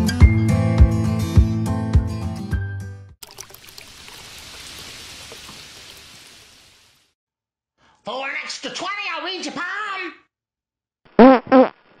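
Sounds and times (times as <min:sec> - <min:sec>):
fart sounds: 0:11.1 - 0:12.0.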